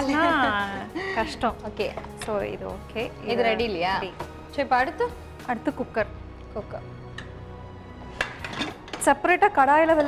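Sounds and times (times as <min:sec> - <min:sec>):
quiet background music: 0:00.0 - 0:10.0
metal pot lid clinking: 0:08.1 - 0:10.0.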